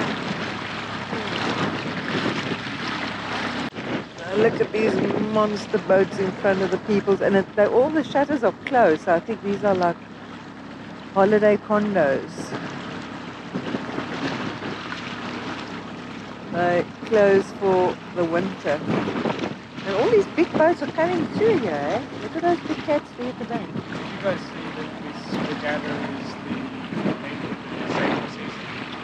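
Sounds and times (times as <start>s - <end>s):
outboard motor running: 0.0s - 29.0s
water noise: 0.0s - 29.0s
wind noise on microphone: 0.0s - 29.0s.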